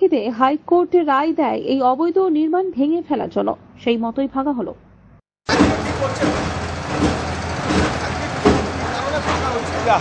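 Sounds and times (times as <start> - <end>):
street noise: 0.0 - 10.0
vehicle engine running: 5.5 - 10.0.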